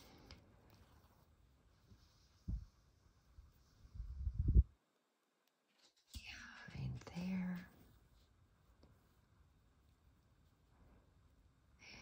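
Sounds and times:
woman whispering: 6.2s - 7.8s, 11.8s - 12.0s.

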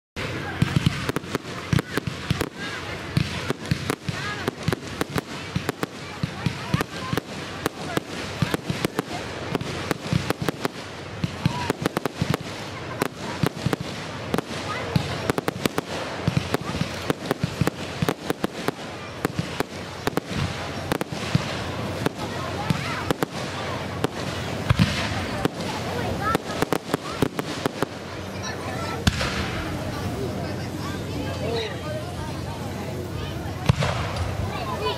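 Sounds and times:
fireworks bangs and crackles: 0.2s - 34.9s.

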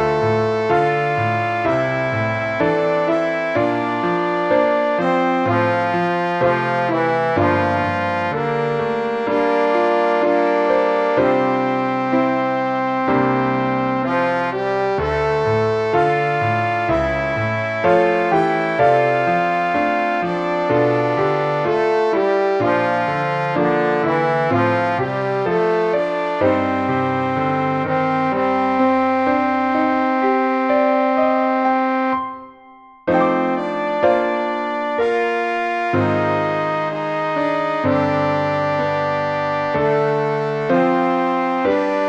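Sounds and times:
synthesized brass-like tone: 0.0s - 32.2s.

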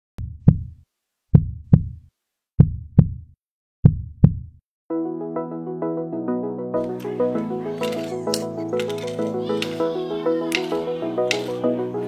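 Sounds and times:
deep heartbeat thumps: 0.2s - 4.6s
background music: 4.9s - 12.0s.

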